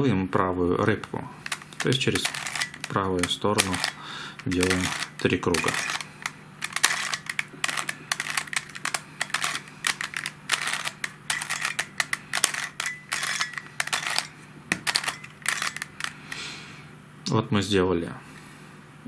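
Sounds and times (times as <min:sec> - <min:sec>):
plastic puzzle clicking: 0:01.0 - 0:16.5.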